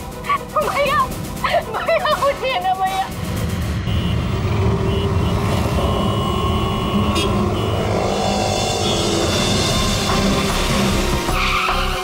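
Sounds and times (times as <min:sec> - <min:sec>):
low rumble of vehicle engines: 0:03.1 - 0:11.2.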